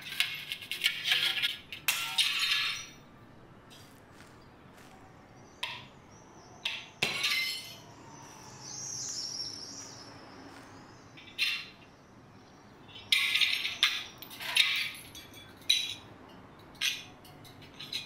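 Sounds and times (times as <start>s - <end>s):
bird chirping: 2.2s - 14.4s
glass clinking: 7.0s - 7.8s, 14.8s - 16.1s.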